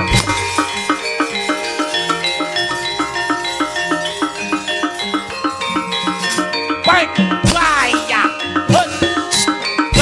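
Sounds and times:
gamelan playing: 0:00.0 - 0:10.0
metallophones ringing notes: 0:00.0 - 0:10.0.

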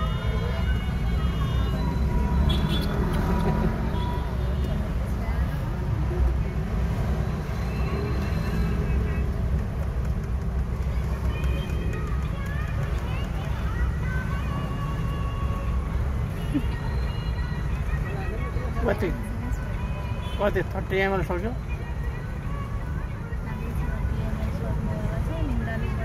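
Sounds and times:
car engine and road noise: 0:00.0 - 0:26.0
quiet passenger voices: 0:00.0 - 0:26.0.

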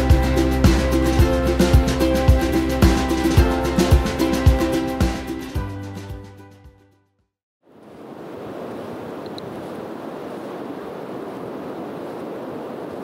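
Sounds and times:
surf washing onto beach: 0:07.8 - 0:13.0.

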